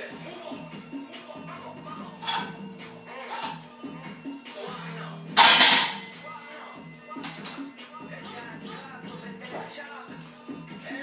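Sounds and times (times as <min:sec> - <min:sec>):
music with vocals: 0:00.0 - 0:11.0
barbell clanking into metal hooks: 0:05.4 - 0:06.1.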